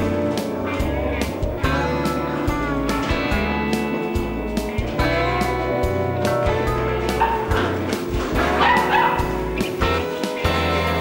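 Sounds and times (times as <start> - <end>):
background music with bass line: 0.0 - 11.0
puppy yipping: 8.4 - 9.4.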